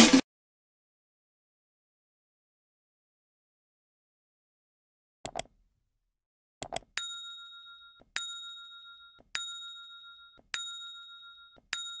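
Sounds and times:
notification bell dinging: 7.0 - 12.0.

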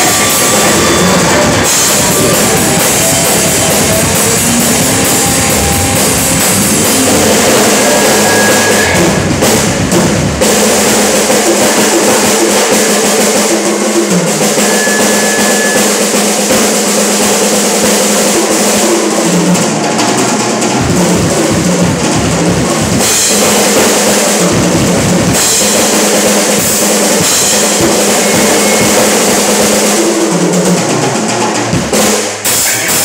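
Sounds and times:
electric guitar: 0.0 - 10.0
electric bass: 0.0 - 10.5
drum kit: 0.0 - 33.0.

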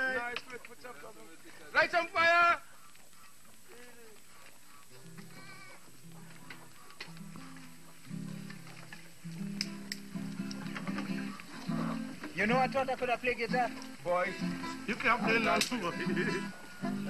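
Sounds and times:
slow low guitar notes: 5.0 - 17.0
sharp clicks: 8.5 - 11.5.

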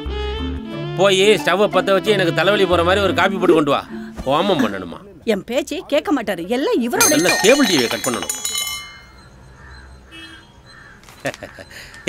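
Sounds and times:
glassy ringing chime: 7.0 - 9.4.

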